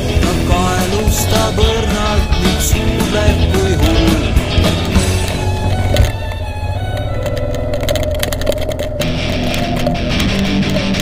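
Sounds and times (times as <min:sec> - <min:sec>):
motorcycle engine running: 0:00.0 - 0:11.0
sharp clicks: 0:03.5 - 0:11.0.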